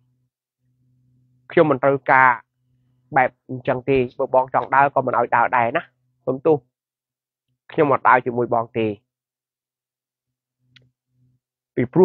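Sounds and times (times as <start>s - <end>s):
man speaking: 3.1s - 6.7s, 11.8s - 12.0s.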